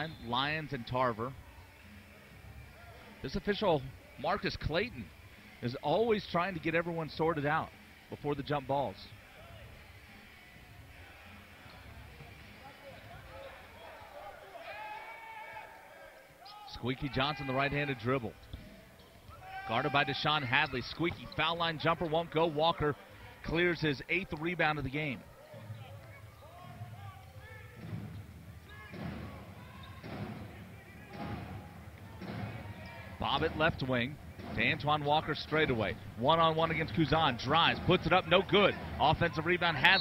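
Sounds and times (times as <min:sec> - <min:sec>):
murmur of crowd voices: 0:00.0 - 0:40.0.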